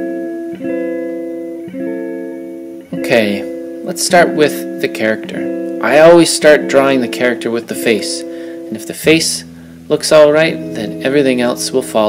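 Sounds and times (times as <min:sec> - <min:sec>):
plucked guitar chords: 0:00.0 - 0:12.0.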